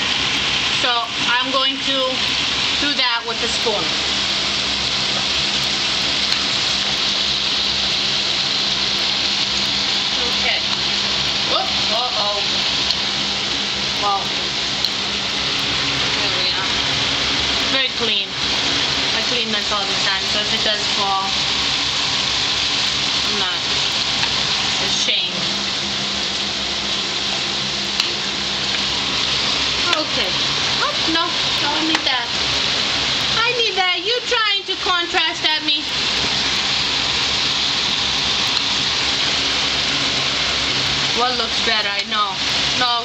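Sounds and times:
meatballs sizzling in oil: 0.0s - 43.0s.

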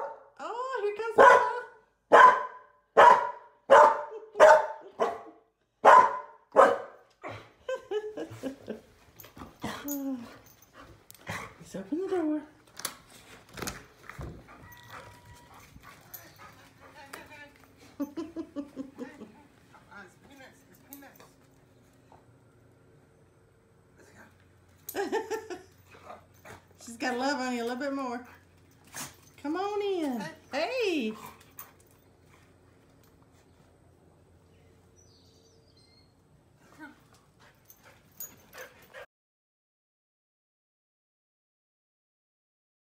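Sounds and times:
dog whining faintly: 14.4s - 16.5s.

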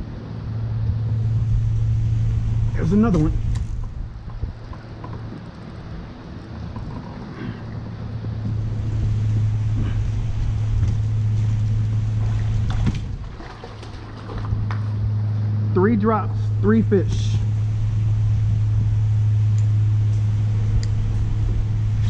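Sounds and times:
low motor drone: 0.0s - 22.0s
water splashing: 1.2s - 15.4s.

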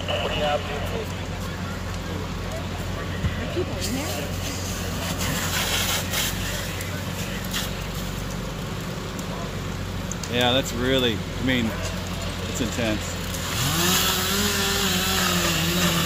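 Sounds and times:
fire engines droning: 0.0s - 16.0s.

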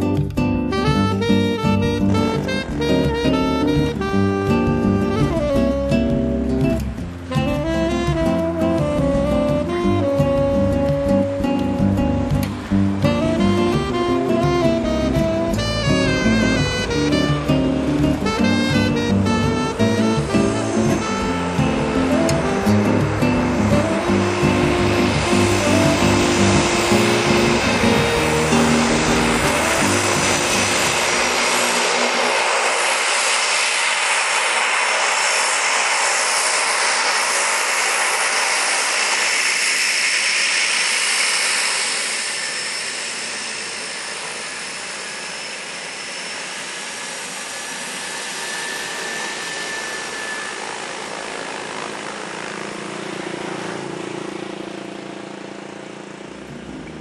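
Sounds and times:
music: 0.0s - 35.4s, 56.4s - 57.0s
high turbine whine: 0.0s - 57.0s
turboprop engine and propeller: 0.0s - 57.0s.

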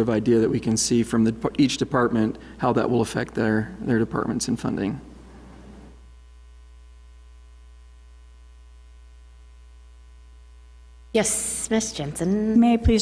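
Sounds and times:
electrical mains hum: 0.0s - 13.0s
faint buzz: 0.0s - 13.0s.

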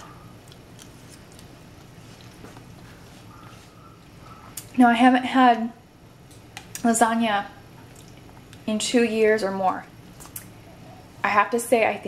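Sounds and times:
low steady hum: 0.0s - 12.0s
chewing: 0.4s - 4.8s, 7.8s - 8.6s.

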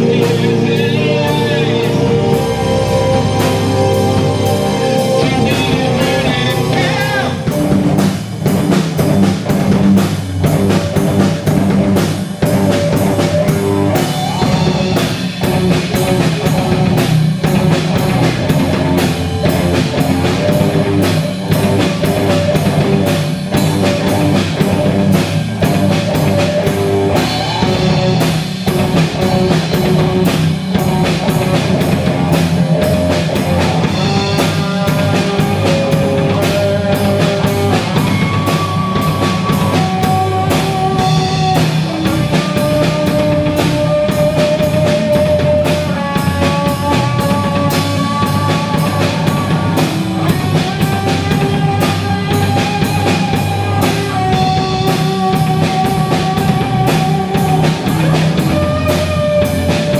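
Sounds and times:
live instrumental rock band: 0.0s - 59.9s
steady drum beat: 0.0s - 59.9s.

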